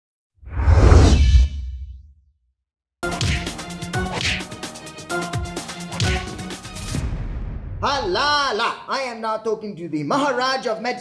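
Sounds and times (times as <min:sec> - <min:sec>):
whoosh: 0:00.4 - 0:02.1.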